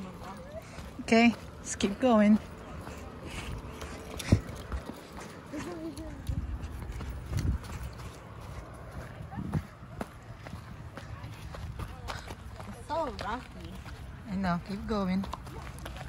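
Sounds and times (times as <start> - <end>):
footsteps on dirt and rock trail: 0.0 - 16.0
wind rumble on microphone: 5.9 - 11.9.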